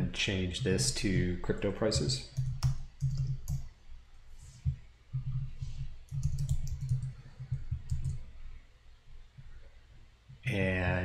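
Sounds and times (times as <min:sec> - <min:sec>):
computer keyboard keystrokes: 0:02.3 - 0:03.7, 0:06.1 - 0:07.2, 0:07.8 - 0:08.2.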